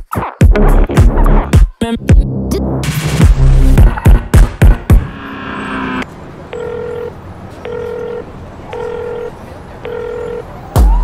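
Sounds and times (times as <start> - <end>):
loud music beat: 0.0 - 5.2, 10.8 - 11.0
electronic telephone beeps: 6.5 - 10.5.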